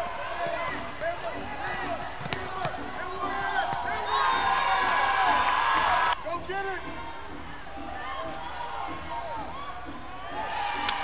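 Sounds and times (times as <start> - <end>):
voices of players and spectators: 0.0 - 10.8.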